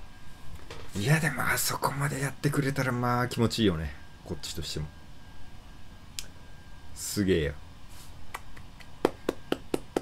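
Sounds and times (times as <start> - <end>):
person clapping hands: 8.3 - 10.0.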